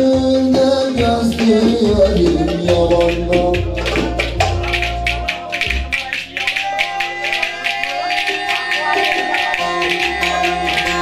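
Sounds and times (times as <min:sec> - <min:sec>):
low bass: 0:01.0 - 0:06.0
sustained melody instruments: 0:01.0 - 0:11.0
wooden spoons clacking: 0:01.3 - 0:11.0.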